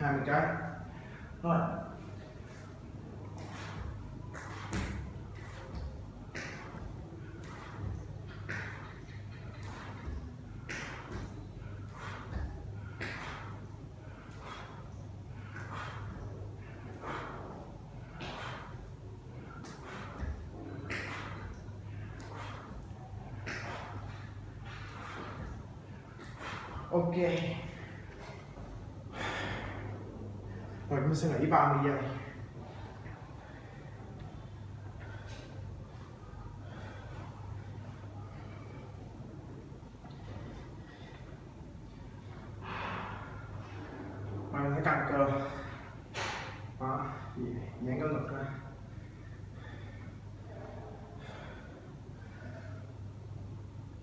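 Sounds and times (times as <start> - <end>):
steady low hum: 0.0 - 54.0
man breathing hard: 0.6 - 30.9, 32.1 - 44.5, 48.6 - 54.0.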